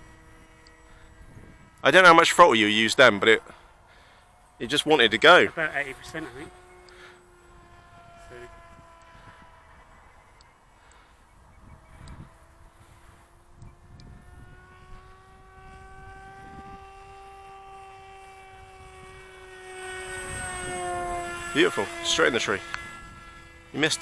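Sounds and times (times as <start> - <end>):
model plane motor buzzing: 0.0 - 24.0.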